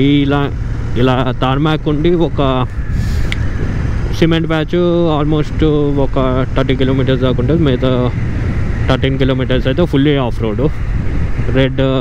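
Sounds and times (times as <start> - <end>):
motorcycle engine: 0.0 - 12.0
wind rumble: 0.0 - 12.0.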